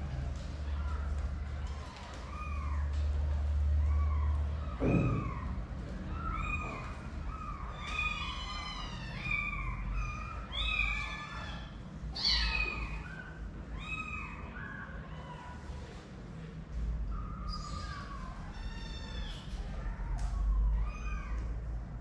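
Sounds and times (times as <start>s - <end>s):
kittens mewing: 0.6s - 15.6s, 17.1s - 21.8s.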